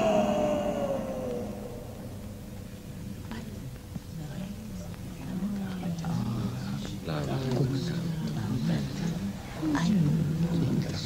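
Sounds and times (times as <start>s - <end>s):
electric guitar note sliding down: 0.0s - 2.8s.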